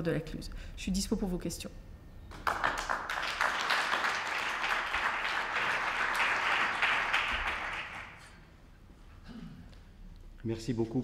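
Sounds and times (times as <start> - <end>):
small audience applauding: 2.3 - 8.5.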